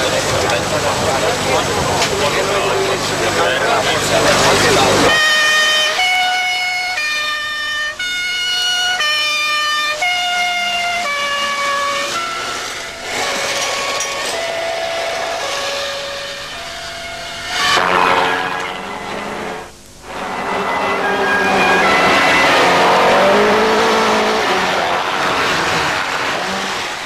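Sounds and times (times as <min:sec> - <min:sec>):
slow horn-like tune: 0:05.1 - 0:26.8
loud rushing noise: 0:12.7 - 0:27.0.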